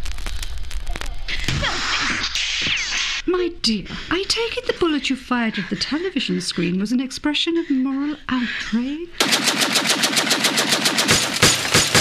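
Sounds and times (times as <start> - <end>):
automatic gunfire: 9.2 - 12.0.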